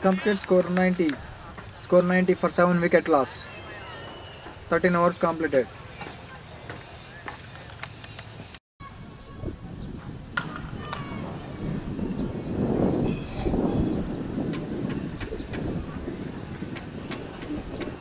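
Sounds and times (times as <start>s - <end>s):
faint indistinct voices: 3.4s - 11.8s
low rumbling: 8.8s - 18.0s.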